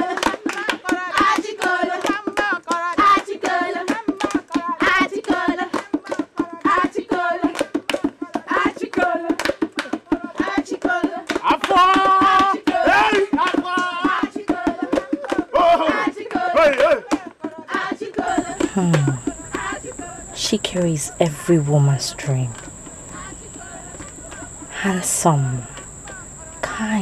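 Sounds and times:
group of voices singing: 15.6s - 21.4s.

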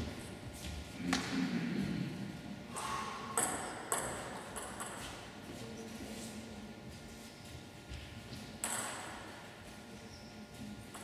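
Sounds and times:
table tennis ball bouncing: 3.3s - 5.1s, 8.6s - 9.3s.

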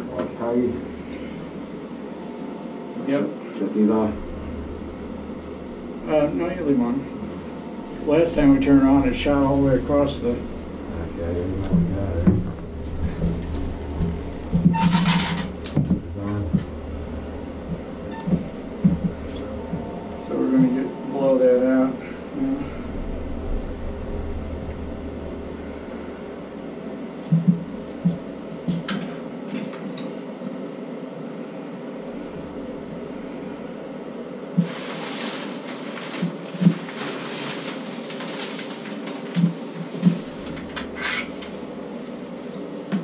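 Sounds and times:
low knocks: 4.1s - 28.9s.

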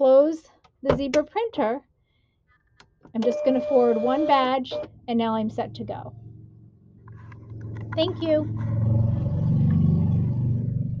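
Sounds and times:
motor vehicle engine rumble: 4.9s - 11.0s.

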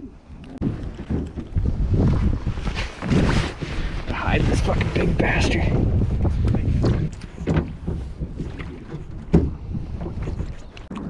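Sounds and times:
wind rumbling on microphone: 0.0s - 11.0s.

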